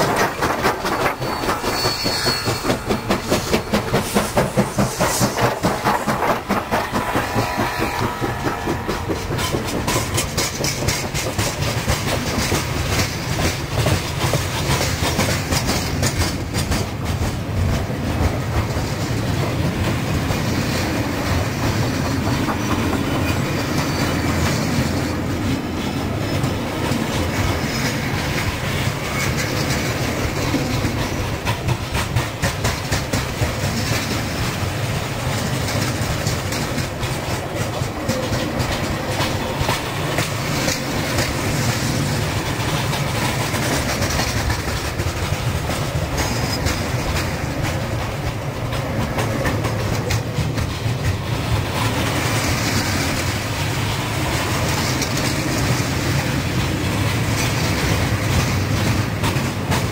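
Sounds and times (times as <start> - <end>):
train rumble: 0.0 - 59.9
train wheels clicking over rail joints: 0.0 - 59.9.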